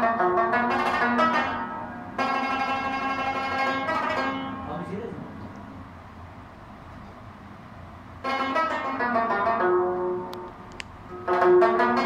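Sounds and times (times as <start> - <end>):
plucked lute chord ringing: 0.0 - 5.0, 8.2 - 12.0.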